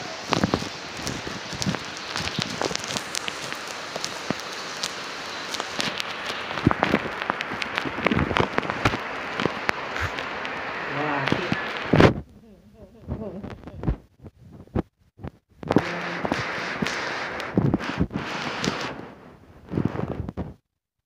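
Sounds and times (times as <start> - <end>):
steady rain hiss: 0.0 - 14.0, 15.6 - 20.3
taps of falling drops: 0.2 - 10.6.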